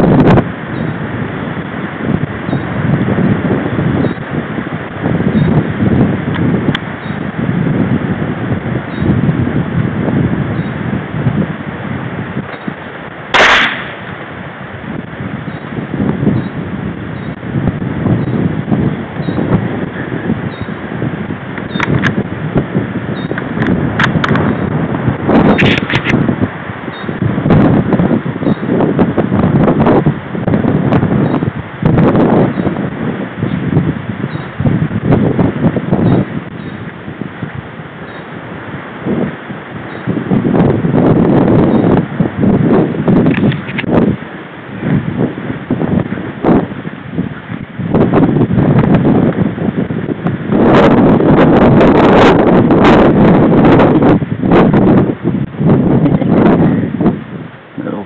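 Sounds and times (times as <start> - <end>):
wind buffeting microphone: 0.0 - 58.0
rifle shot: 13.3 - 14.2.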